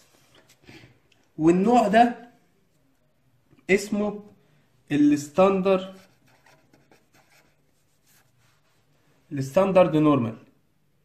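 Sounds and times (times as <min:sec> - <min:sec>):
marker writing on paper: 0:05.8 - 0:08.7.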